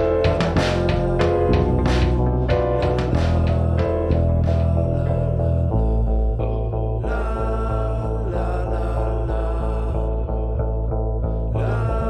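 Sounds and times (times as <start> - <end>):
layered church-like sung vocals: 0.0 - 12.0
low bass and drum pulse: 0.0 - 12.0.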